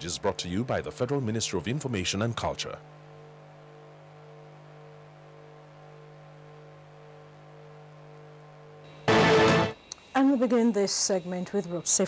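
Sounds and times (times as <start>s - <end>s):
mains hum: 0.0s - 12.0s
faint pulsing tone: 3.0s - 12.0s.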